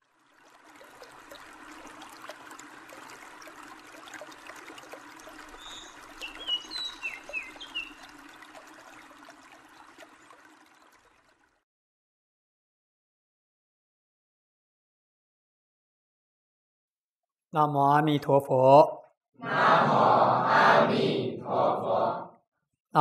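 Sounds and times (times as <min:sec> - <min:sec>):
babbling stream water: 0:00.0 - 0:11.6
bird chirps: 0:05.6 - 0:08.1.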